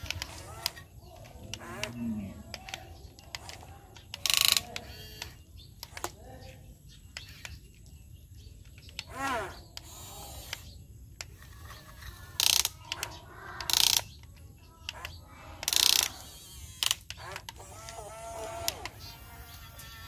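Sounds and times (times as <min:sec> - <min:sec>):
toy electric motors whirring: 0:00.0 - 0:20.0.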